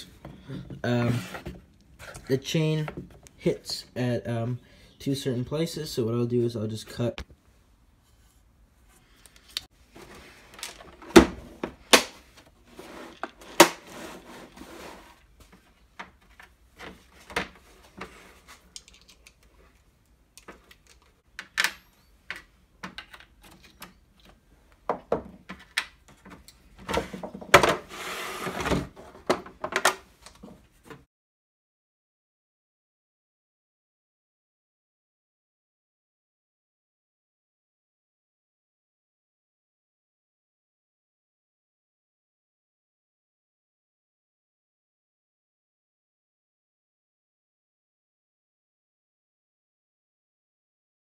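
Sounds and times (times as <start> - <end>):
rummaging through tool parts: 9.3 - 30.7.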